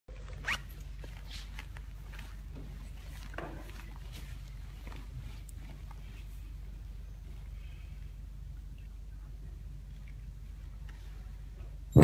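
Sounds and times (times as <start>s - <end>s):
steady low hum: 0.1s - 12.0s.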